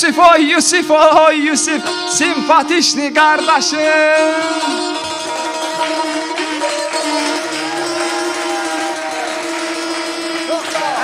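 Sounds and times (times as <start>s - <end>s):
strummed lute: 0.0s - 11.0s
wind instrument long note: 3.4s - 11.0s.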